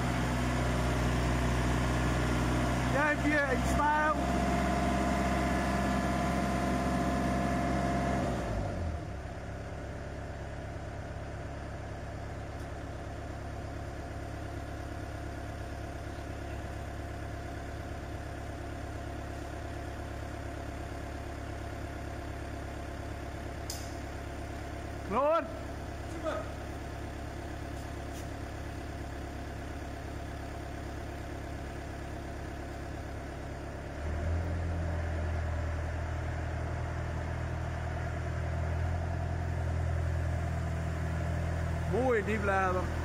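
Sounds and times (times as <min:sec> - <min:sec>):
crane diesel engine running: 0:00.0 - 0:43.0.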